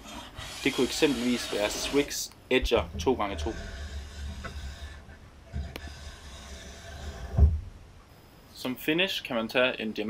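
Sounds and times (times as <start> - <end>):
file scraping steel edge: 0.0 - 2.2, 2.9 - 7.4
low thump: 7.3 - 7.8.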